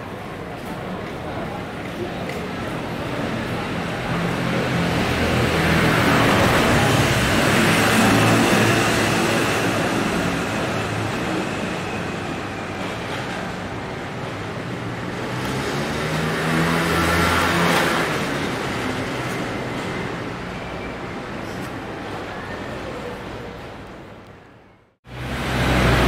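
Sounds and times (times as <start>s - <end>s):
cars passing close by: 3.4s - 12.5s, 14.7s - 20.5s, 25.1s - 26.0s.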